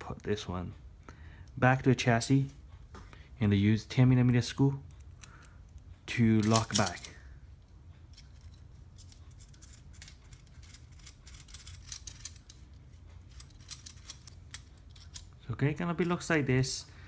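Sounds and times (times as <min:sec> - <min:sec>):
screwdriver turning a screw: 0:08.2 - 0:15.4.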